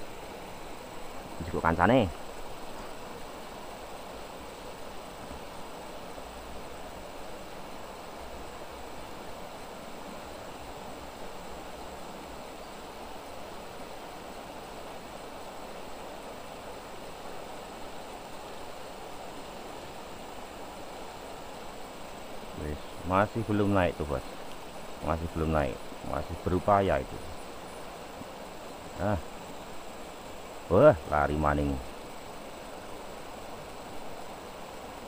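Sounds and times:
river rushing over rocks: 0:00.0 - 0:35.0.

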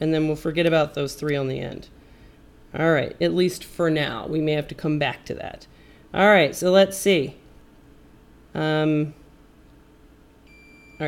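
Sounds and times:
multimeter high-pitched beep: 0:10.5 - 0:11.0.

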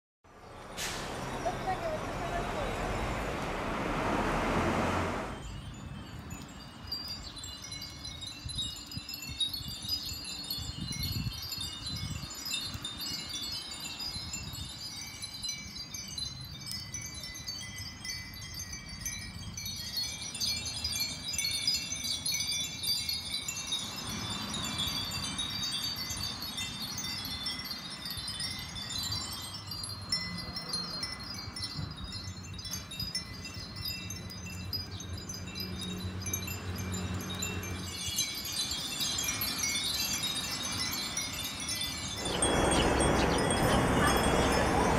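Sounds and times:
wind bells tinkling: 0:00.3 - 0:03.8, 0:04.9 - 0:44.9.

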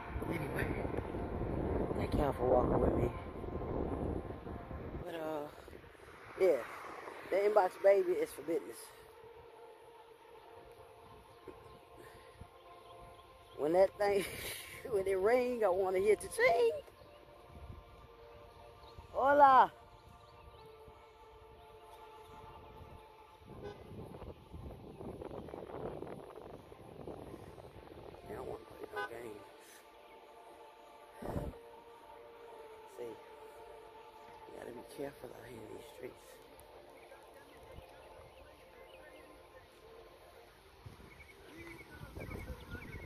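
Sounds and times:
faint steady horn tone: 0:00.0 - 0:14.1, 0:14.9 - 0:43.0
low outdoor rumble: 0:00.0 - 0:43.0
passing vehicles: 0:00.0 - 0:43.0.

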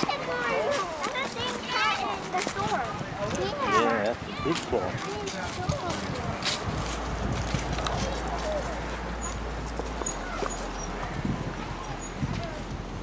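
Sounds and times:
children chattering: 0:00.0 - 0:13.0
outdoor ambience: 0:00.0 - 0:13.0.

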